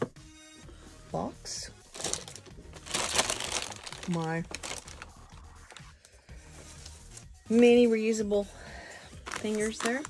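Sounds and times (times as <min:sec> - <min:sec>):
plastic bag crinkling: 0:01.9 - 0:05.9, 0:09.2 - 0:10.0.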